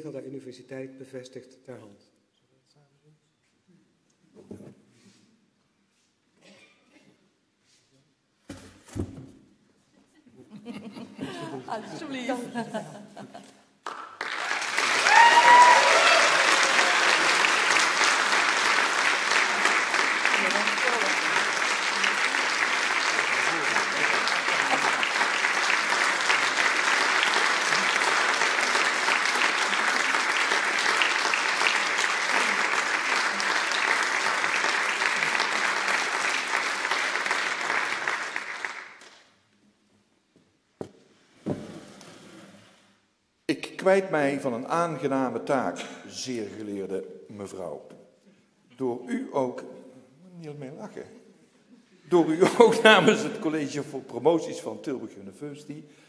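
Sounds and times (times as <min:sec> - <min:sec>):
audience applauding: 0:13.8 - 0:39.3
person cheering: 0:14.9 - 0:17.5.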